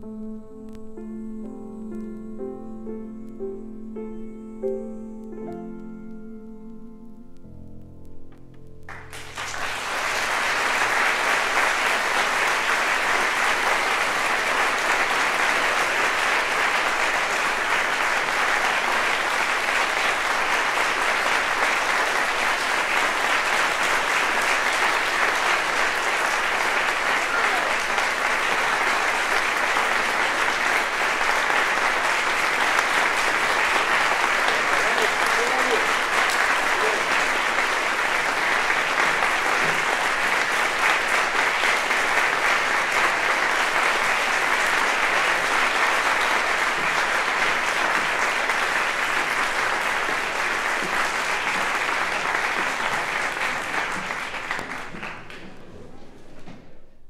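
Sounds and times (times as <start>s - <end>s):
audience applauding: 8.9s - 56.0s.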